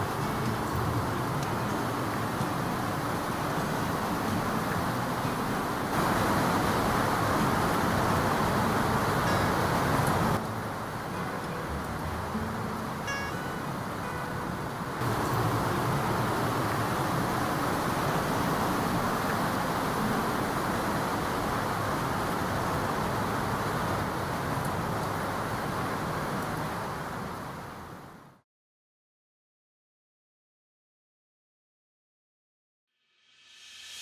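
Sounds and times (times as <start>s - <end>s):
steady rushing noise: 0.0s - 26.7s.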